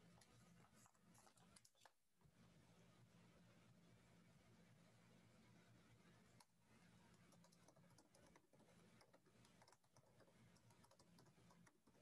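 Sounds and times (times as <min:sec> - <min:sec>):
low steady hum: 0:00.0 - 0:12.0
computer keyboard typing: 0:07.1 - 0:12.0.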